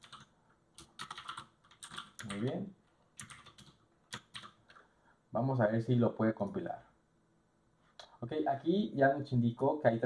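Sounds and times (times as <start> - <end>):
computer keyboard typing: 0.0 - 2.6, 3.2 - 4.8.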